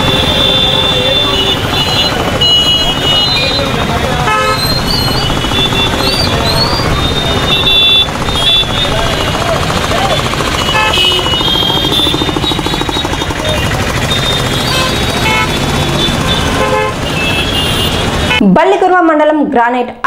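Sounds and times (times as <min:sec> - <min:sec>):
street crowd voices: 0:00.0 - 0:18.4
vehicle engines running: 0:00.0 - 0:18.4
vehicle horns tooting: 0:00.0 - 0:18.4.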